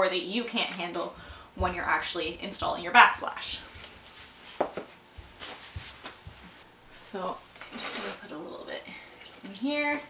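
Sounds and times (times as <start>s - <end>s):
soft footsteps on concrete: 3.7s - 6.7s.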